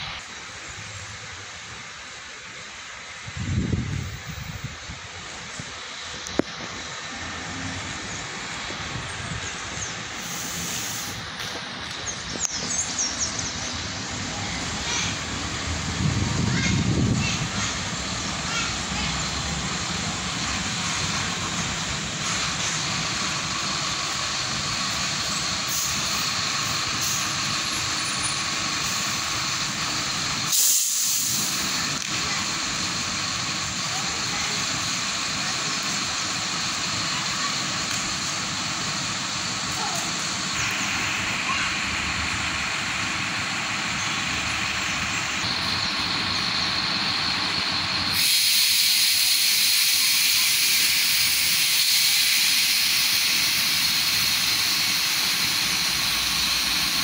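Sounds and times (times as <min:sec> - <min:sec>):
bus engine running: 0:00.0 - 0:57.0
air brake hiss: 0:10.1 - 0:11.7, 0:24.5 - 0:29.4, 0:30.4 - 0:31.8, 0:47.4 - 0:57.0.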